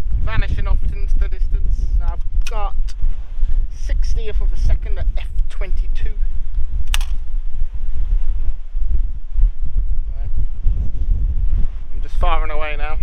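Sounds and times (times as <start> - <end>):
wind buffeting microphone: 0.0 - 13.0
camera shutter click: 6.9 - 7.2.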